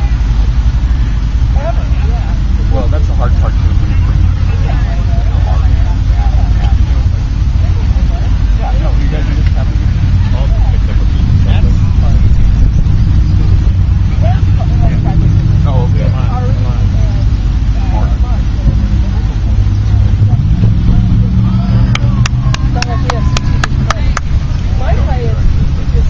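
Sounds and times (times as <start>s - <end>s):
distant voices calling: 0.0s - 26.0s
loud low rumble: 0.0s - 26.0s.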